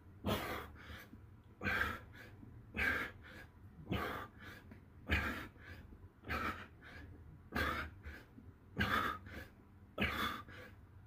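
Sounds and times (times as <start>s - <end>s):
man breathing hard: 0.2s - 11.0s.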